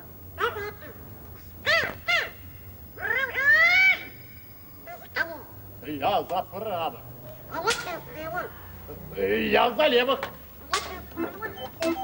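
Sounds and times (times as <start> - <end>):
squawky high-pitched puppet voice: 0.4 - 1.0, 1.6 - 2.4, 3.0 - 4.2, 10.7 - 12.0.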